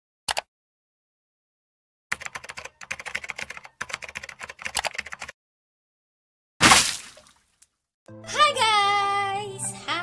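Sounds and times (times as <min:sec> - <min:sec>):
computer keyboard typing: 0:02.1 - 0:05.4.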